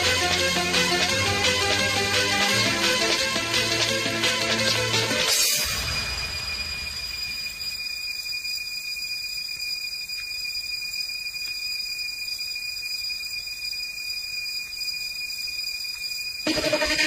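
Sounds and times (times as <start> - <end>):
thin high whine: 0.0 - 17.0.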